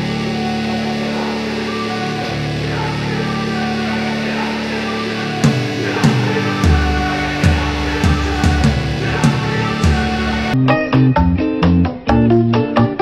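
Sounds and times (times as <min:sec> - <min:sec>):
held music chords: 0:00.0 - 0:13.0
sharp music beats: 0:05.4 - 0:12.4.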